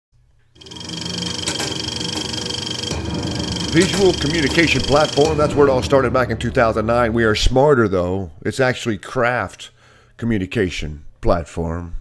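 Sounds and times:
film projector whirring rattle: 0.6s - 5.3s.

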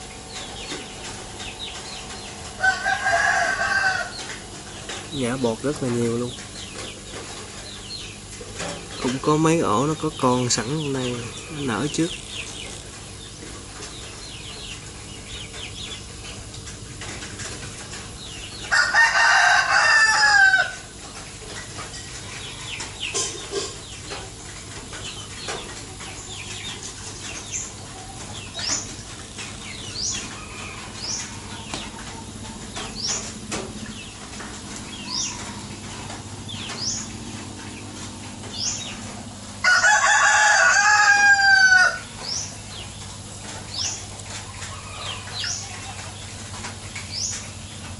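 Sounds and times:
rooster crowing: 2.6s - 4.2s, 18.7s - 20.9s, 30.2s - 32.3s, 39.6s - 42.2s, 44.5s - 45.5s.

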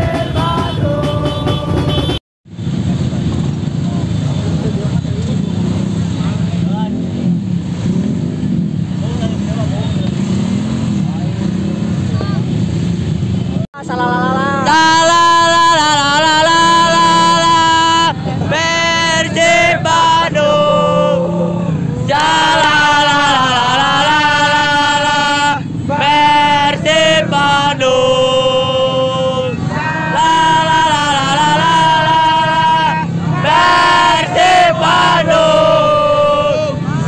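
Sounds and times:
motorcycle engines revving: 0.0s - 37.0s
group chanting with held notes: 14.1s - 37.0s
crowd voices: 16.8s - 37.0s.

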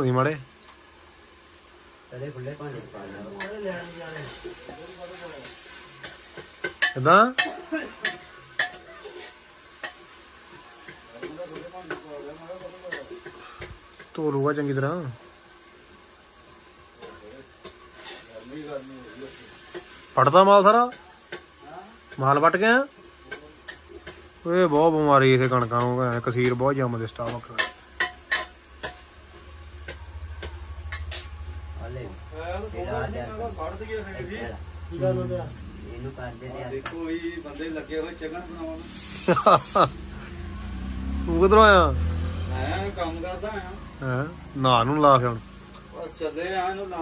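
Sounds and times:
low steady hum: 28.9s - 40.6s.

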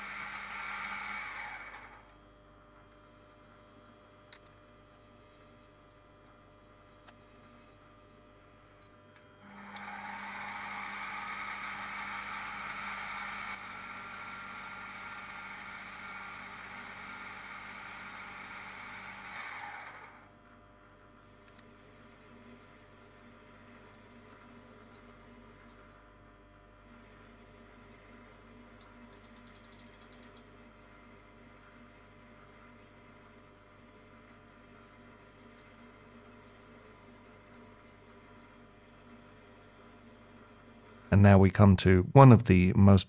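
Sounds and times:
drill boring into brass: 0.0s - 2.0s, 9.4s - 20.1s
mill spindle motor running: 0.0s - 4.0s, 6.5s - 20.4s.

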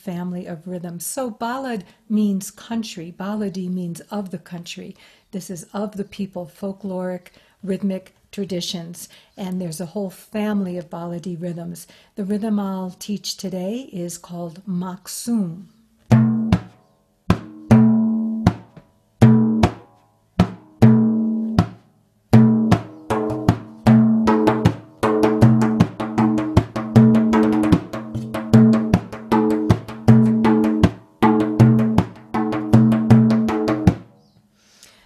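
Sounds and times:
frame drum rhythm: 16.1s - 34.1s.

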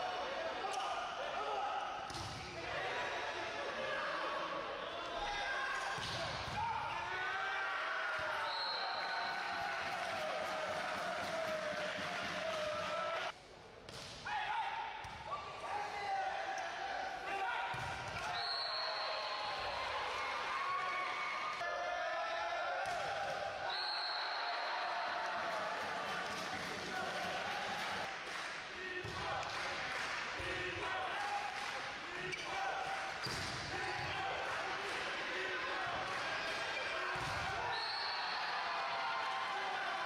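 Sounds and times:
players shouting: 0.0s - 13.4s, 14.2s - 28.1s, 30.4s - 40.0s.

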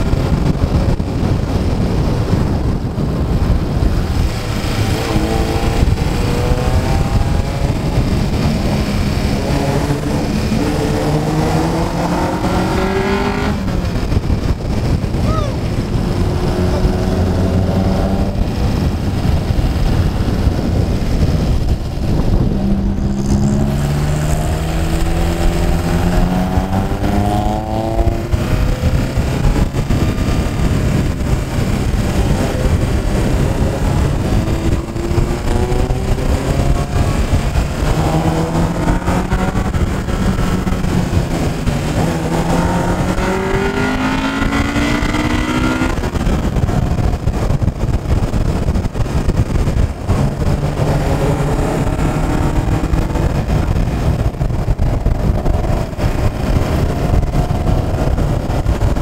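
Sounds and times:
car engine accelerating: 0.0s - 59.0s
wind and road noise: 0.0s - 59.0s.

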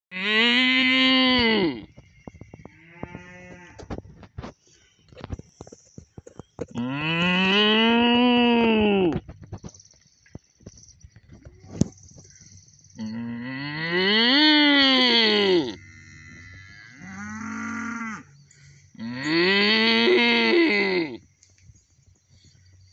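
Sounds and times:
cow mooing: 0.1s - 1.9s, 6.8s - 9.1s, 13.0s - 18.3s, 19.0s - 21.2s.

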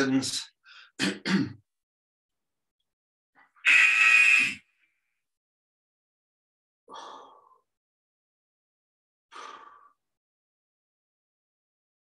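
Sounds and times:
interval timer buzzer: 3.6s - 4.6s.

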